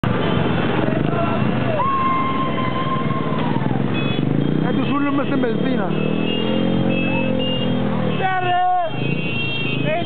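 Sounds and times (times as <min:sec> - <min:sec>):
motorcycle engines running: 0:00.0 - 0:10.0.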